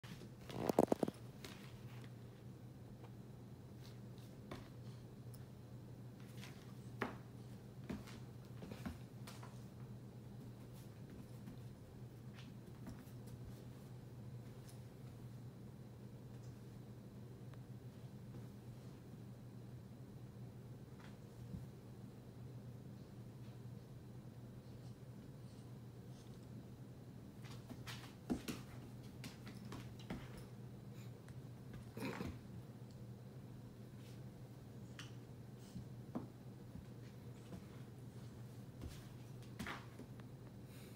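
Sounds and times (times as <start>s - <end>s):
low steady hum: 0.0s - 40.9s
puppy claws scrabbling on wood floor: 0.1s - 2.2s
puppy growling grunts: 31.9s - 32.4s.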